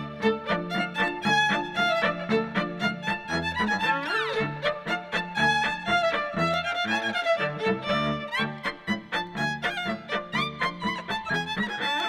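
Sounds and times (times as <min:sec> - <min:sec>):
violin melody: 0:00.0 - 0:12.0.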